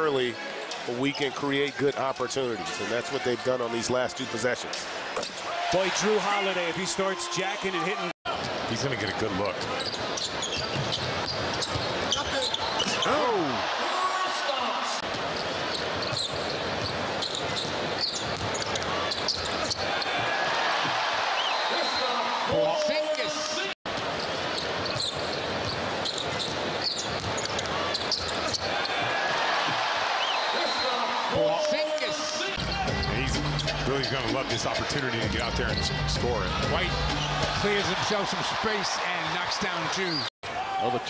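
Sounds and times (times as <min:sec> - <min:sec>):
arena crowd noise: 0:00.0 - 0:41.0.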